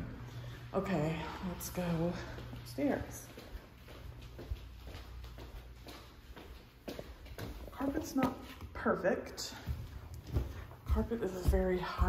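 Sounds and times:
soft footsteps on carpeted stairs: 0.8s - 12.0s
steady low rumble: 9.6s - 12.0s.

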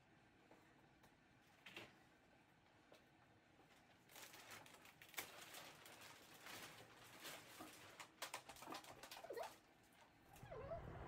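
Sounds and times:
dog whining: 10.3s - 11.0s.

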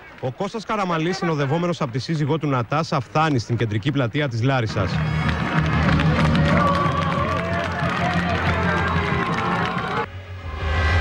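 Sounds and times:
crowd clapping and cheering: 4.7s - 10.1s
voices calling out: 4.7s - 10.1s
music playing: 4.7s - 11.0s.

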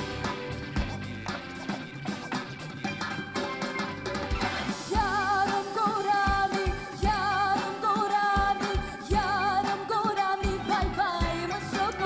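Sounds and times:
band with drum beats: 0.0s - 12.0s
woman singing with vibrato: 4.9s - 12.0s.

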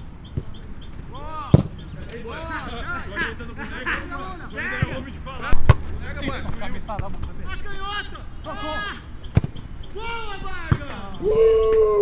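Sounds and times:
players calling out: 0.2s - 12.0s
football being kicked: 1.5s - 1.8s, 9.3s - 9.6s, 10.6s - 11.0s.

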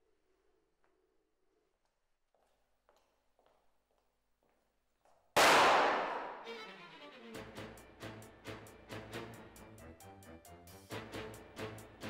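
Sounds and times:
loud gunshot: 5.4s - 6.4s.

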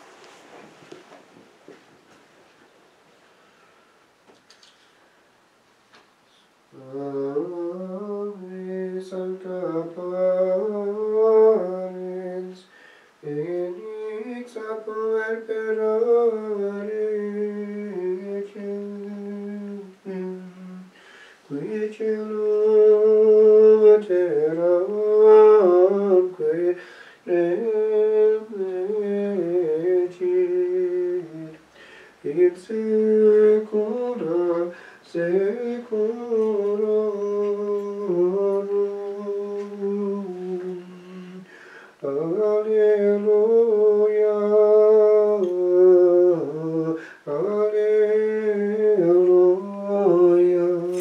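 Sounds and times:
person singing plainchant: 6.3s - 51.0s.

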